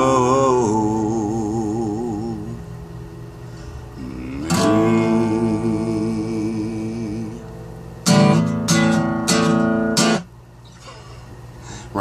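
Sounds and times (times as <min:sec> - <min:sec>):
faint low hum: 0:00.0 - 0:12.0
acoustic guitar strummed chord: 0:03.5 - 0:10.3.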